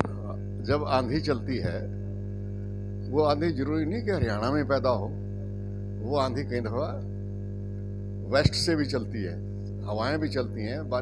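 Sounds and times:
microphone pop: 0.0 - 0.2
man speaking: 0.0 - 1.9, 3.1 - 5.2, 6.0 - 7.0, 8.3 - 11.0
loud electrical mains hum: 0.0 - 11.0.

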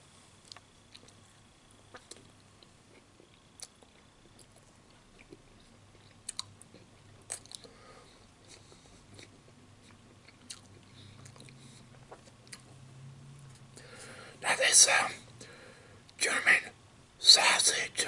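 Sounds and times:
low steady hum: 0.0 - 18.0
man chewing food: 0.4 - 14.3.

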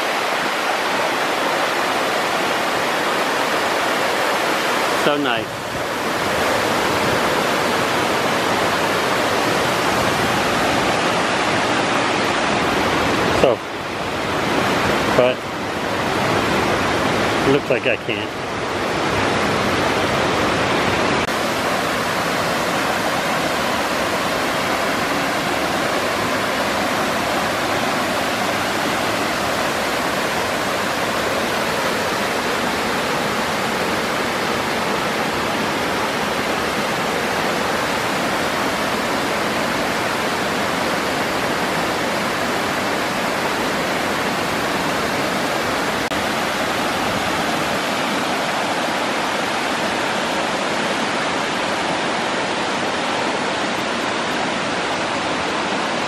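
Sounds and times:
waterfall rushing over rocks: 0.0 - 56.0.

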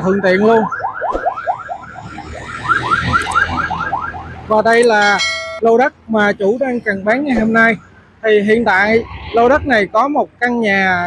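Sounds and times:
electronic alarm rising chirps: 4.8 - 5.6.

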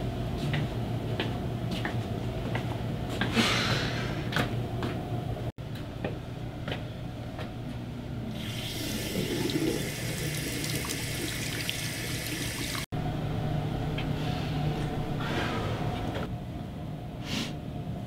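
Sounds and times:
water running into sink: 8.3 - 12.9.

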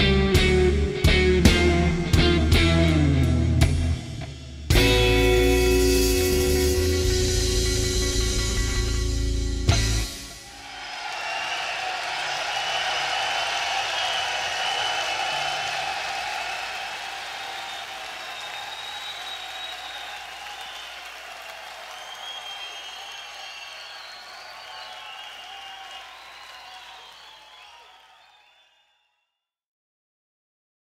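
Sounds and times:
audience applauding: 10.3 - 28.8.

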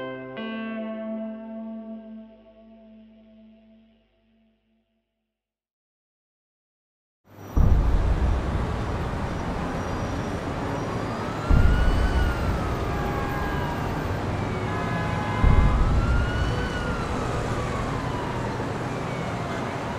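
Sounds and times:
heavy low rumble: 7.6 - 14.4, 15.4 - 18.3
siren wailing: 7.6 - 19.9.

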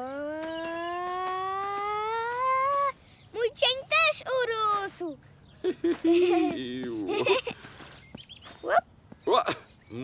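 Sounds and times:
cartoon rising tone: 0.0 - 2.8.

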